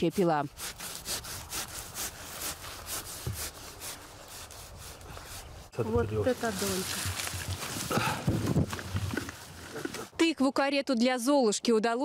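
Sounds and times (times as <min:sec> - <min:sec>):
hand saw cutting pumpkin: 0:00.0 - 0:05.7.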